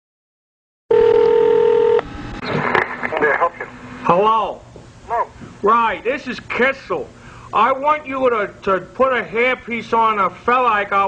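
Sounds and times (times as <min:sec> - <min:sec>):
telephone tone: 0:00.9 - 0:02.1
muffled voice: 0:03.1 - 0:03.7.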